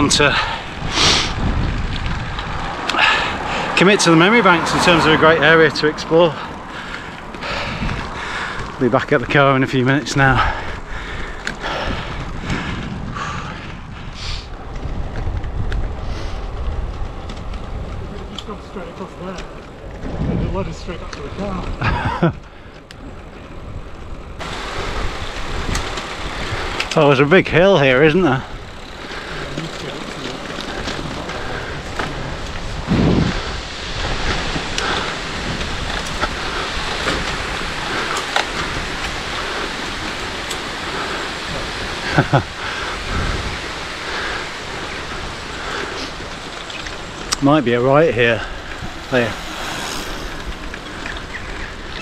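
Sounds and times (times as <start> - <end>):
tyre noise on tarmac: 0.0 - 52.0
wind rumbling on microphone: 0.0 - 52.0.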